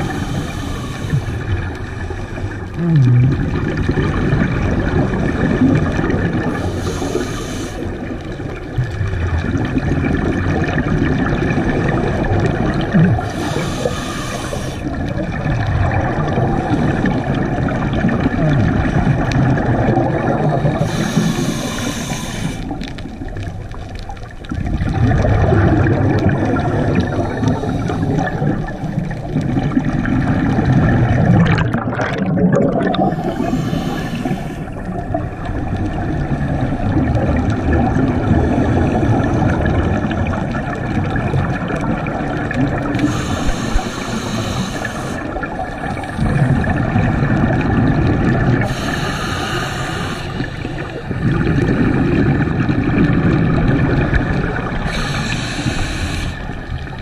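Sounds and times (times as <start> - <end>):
exhaled bubbles rumbling underwater: 0.0 - 57.0
regulator hissing: 20.9 - 22.7, 33.2 - 34.8, 43.1 - 45.2, 48.7 - 50.9, 54.8 - 56.5.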